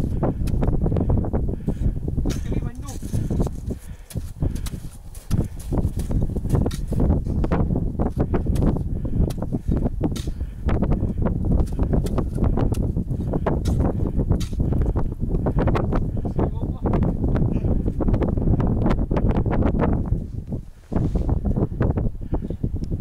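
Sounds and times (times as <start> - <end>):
wind rumbling on microphone: 0.0 - 23.0
boots crunching in snow: 2.8 - 7.4.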